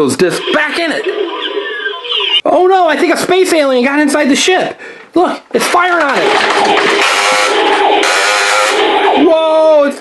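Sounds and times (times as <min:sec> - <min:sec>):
toy electronic battle sound effects: 0:00.0 - 0:02.4, 0:06.1 - 0:09.7.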